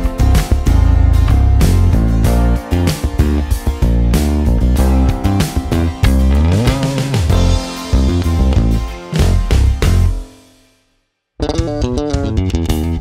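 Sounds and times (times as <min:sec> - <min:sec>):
electric bass riff: 0:00.0 - 0:10.3, 0:11.4 - 0:13.0
backing track: 0:00.0 - 0:10.6, 0:11.4 - 0:13.0.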